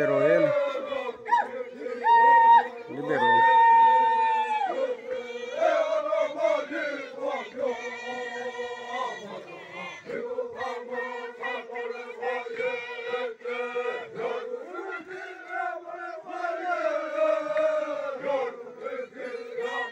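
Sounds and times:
men chanting in unison: 0.0s - 19.9s.

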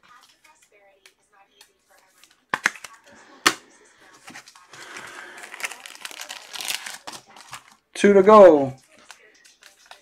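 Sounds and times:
cards clicking and slapping: 1.0s - 3.6s
packaging rustling: 4.1s - 7.8s.

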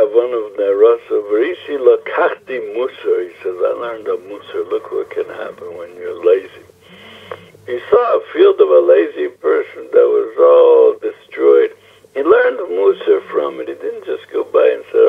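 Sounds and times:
man talking on phone: 0.0s - 15.0s.

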